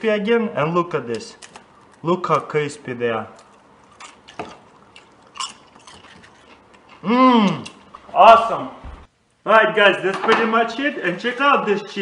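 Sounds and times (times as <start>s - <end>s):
potato chips crunching: 3.4s - 7.8s.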